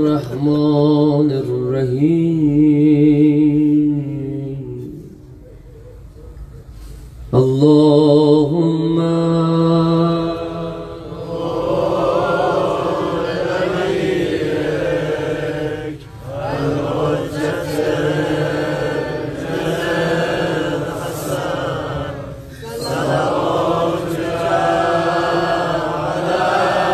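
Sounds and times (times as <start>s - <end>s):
man chanting a mourning lament: 0.0s - 5.5s, 7.3s - 10.8s.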